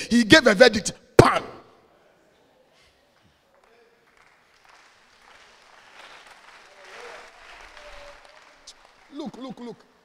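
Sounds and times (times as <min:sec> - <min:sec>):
congregation applauding: 0:03.4 - 0:10.0.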